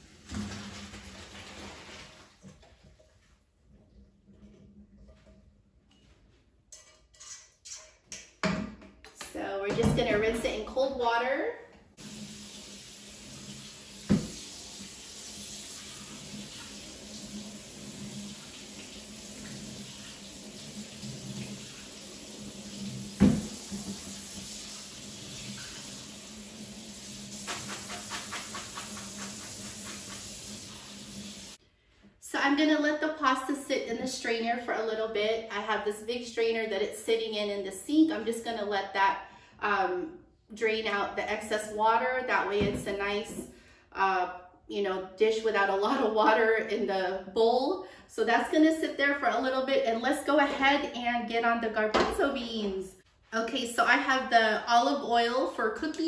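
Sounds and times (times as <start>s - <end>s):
faucet running into sink: 12.0s - 31.6s.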